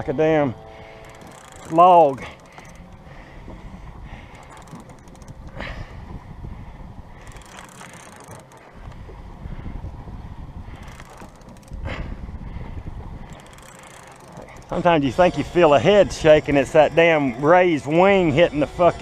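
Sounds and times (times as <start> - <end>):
fishing reel ticking: 0.2 - 5.7, 7.2 - 9.2, 10.7 - 12.0, 13.0 - 19.0
wind rumble on microphone: 2.7 - 7.5, 8.7 - 13.6.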